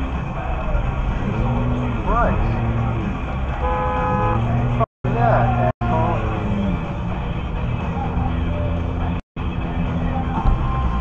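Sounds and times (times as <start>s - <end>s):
road rumble from moving car: 0.0s - 11.0s
car horn beep: 3.5s - 4.8s.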